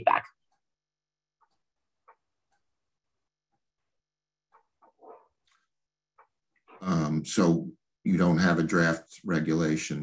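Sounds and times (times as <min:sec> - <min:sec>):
man speaking: 0:06.7 - 0:10.0.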